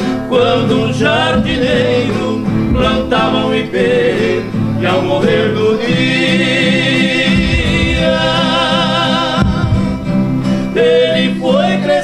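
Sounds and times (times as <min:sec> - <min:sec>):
duo singing with vibrato: 0:00.0 - 0:12.0
strummed acoustic guitars: 0:00.0 - 0:12.0.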